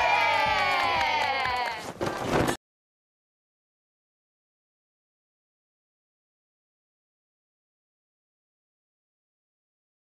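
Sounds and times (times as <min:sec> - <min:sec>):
people cheering shout: 0:00.0 - 0:01.9.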